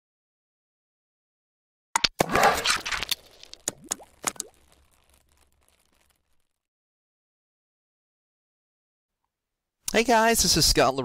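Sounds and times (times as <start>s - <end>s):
quick pops with rising tones: 2.0s - 6.6s.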